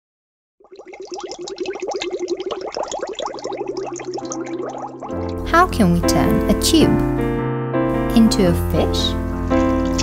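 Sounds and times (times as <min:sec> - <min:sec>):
rising bubble blips: 0:00.6 - 0:05.5.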